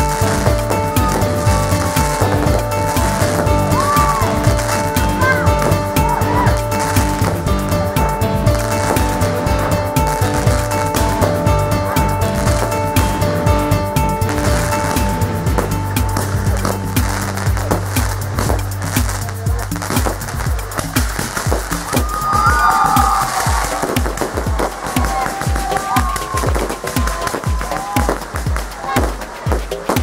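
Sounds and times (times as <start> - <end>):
fireworks bursting and crackling: 0.0 - 30.0
music playing: 0.0 - 30.0.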